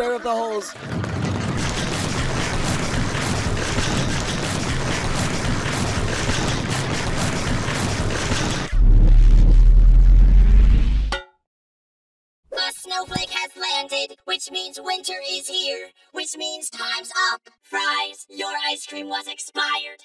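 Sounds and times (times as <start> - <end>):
dense rumbling noise: 0.8 - 11.1
deep rumble: 8.6 - 11.1.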